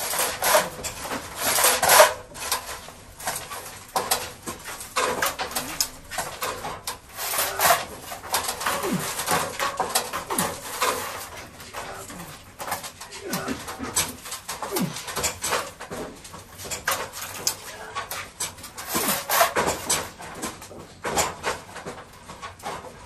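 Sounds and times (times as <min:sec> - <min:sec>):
wooden boards knocking and clattering: 0:00.0 - 0:23.0.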